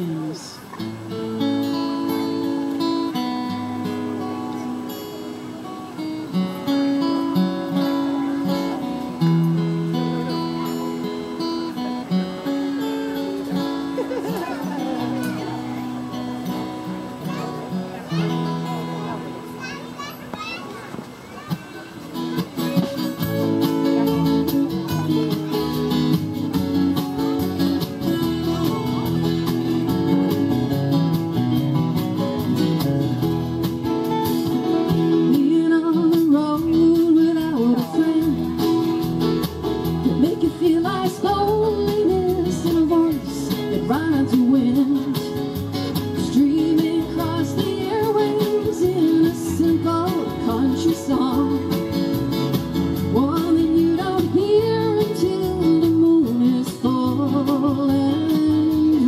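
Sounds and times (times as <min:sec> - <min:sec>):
live band playing: 0:00.0 - 0:59.0.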